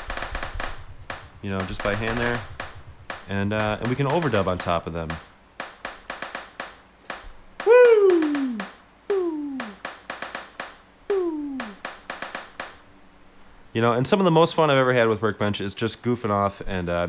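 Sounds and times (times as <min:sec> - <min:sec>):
short sharp hand claps: 0:07.1 - 0:08.8
silly vocal noise sliding down: 0:07.6 - 0:09.8, 0:11.1 - 0:11.8.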